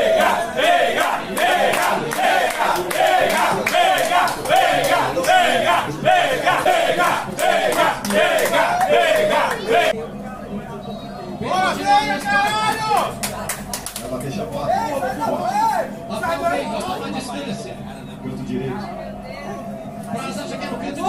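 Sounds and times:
crowd chanting in unison: 0.0s - 10.0s.

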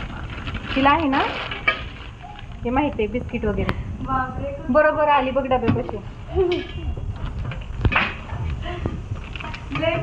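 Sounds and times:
plastic packets crinkling: 0.0s - 2.9s.

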